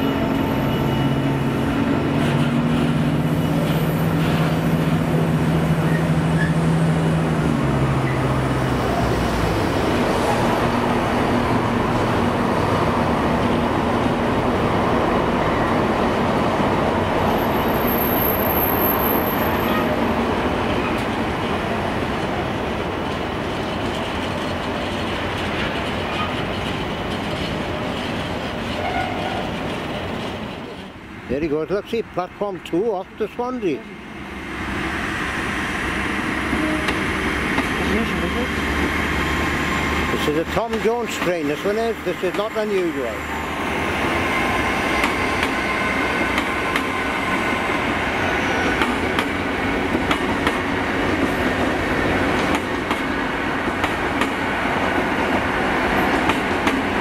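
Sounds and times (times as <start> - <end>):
train wheels on rail: 0.0 - 57.0.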